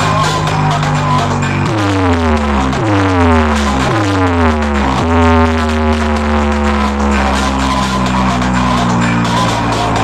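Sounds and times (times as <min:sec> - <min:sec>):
loud electronic dance music: 0:00.0 - 0:10.0.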